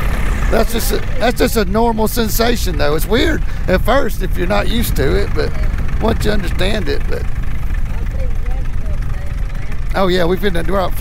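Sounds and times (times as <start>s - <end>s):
paramotor engine running: 0.0s - 11.0s.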